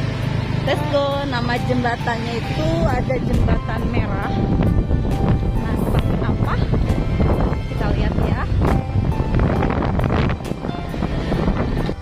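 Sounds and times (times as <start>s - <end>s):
faint background music: 0.0s - 12.0s
motorcycle engine rumble: 0.0s - 12.0s
wind buffeting microphone: 2.6s - 12.0s.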